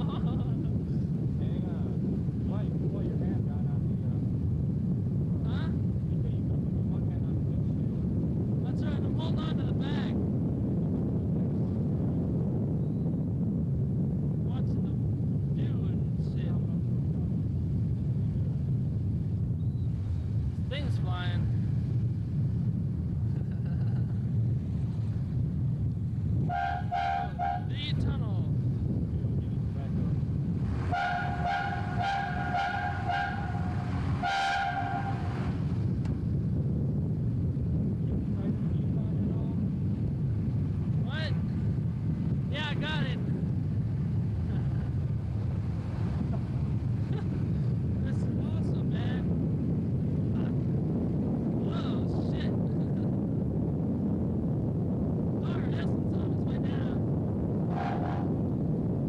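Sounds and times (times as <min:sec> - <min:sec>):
road and wind noise: 0:00.0 - 0:59.0
vehicle driving rumble: 0:00.0 - 0:59.0
car horn blasts: 0:26.4 - 0:27.8, 0:30.8 - 0:35.5.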